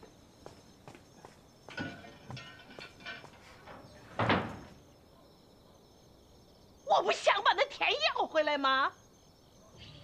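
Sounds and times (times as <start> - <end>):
wooden doors banging shut: 1.7 - 4.8.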